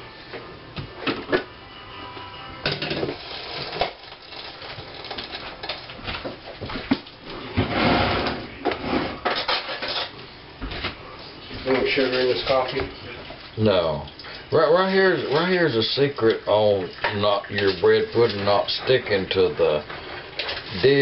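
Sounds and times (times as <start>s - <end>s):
utensils and dishes clinking: 2.6s - 5.9s, 8.2s - 10.2s
rushing scraping noise: 7.6s - 9.2s.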